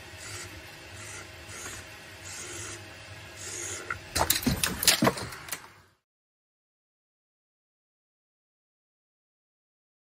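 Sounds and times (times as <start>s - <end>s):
small electric motors humming: 0.0s - 5.7s.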